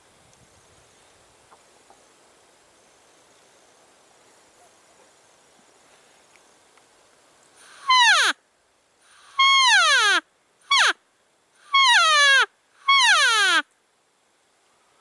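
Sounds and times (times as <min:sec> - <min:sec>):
elk call mews: 0:11.7 - 0:13.6.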